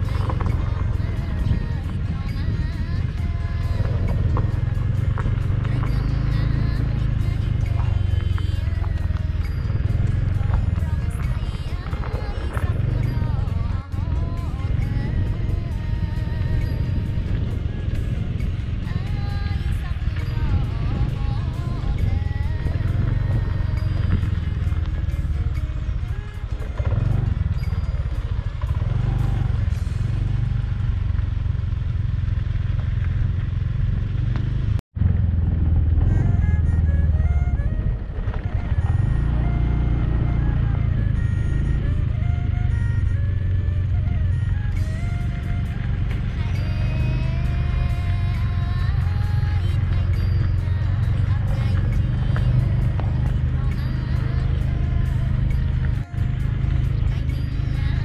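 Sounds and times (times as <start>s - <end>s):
background music: 0.0s - 31.0s, 35.8s - 58.0s
motorbike engine and wind rumble: 0.0s - 58.0s.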